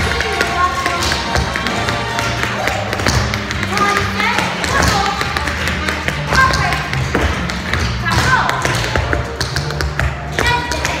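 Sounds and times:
dance shoes tapping on floor: 0.0 - 11.0.

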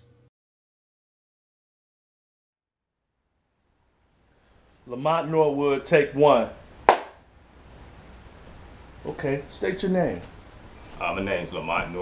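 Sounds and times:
faint hiss: 3.6 - 12.0.

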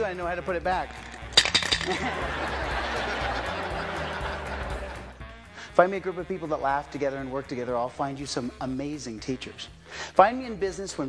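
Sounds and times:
sharp metallic clinks: 0.8 - 2.1
audience laughing and murmuring: 2.0 - 5.1.

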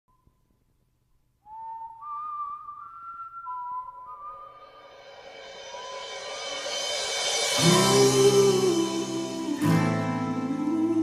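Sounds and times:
whistle-like melody: 1.4 - 11.0
faint high tone: 4.2 - 11.0.

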